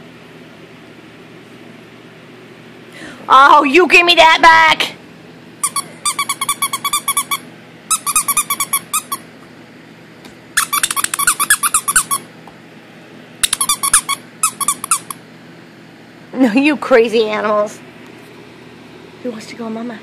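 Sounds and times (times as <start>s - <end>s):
dog toy squeaking: 5.6s - 9.3s, 10.6s - 12.3s, 13.4s - 15.2s.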